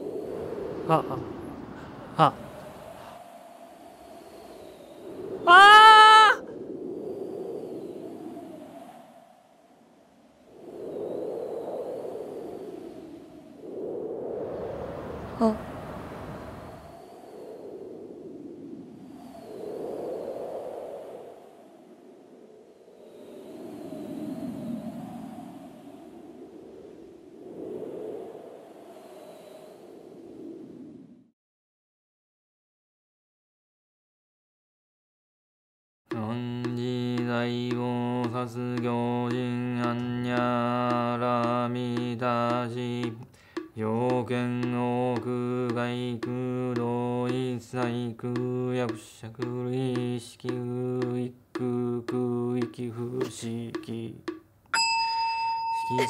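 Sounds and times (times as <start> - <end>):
loud rising cry: 5.4 - 6.5
breathy swells: 43.2 - 43.8.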